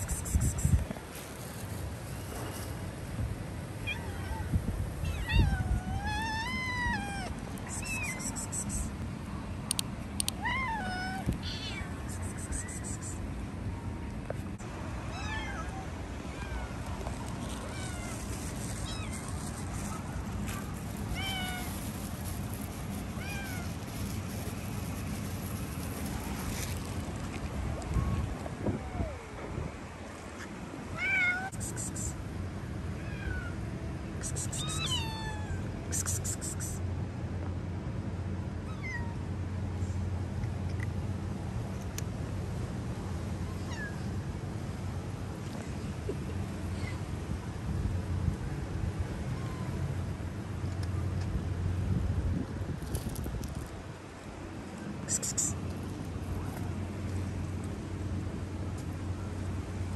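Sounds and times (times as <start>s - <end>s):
cat meowing: 3.9s - 8.4s, 10.4s - 11.9s, 34.6s - 35.6s.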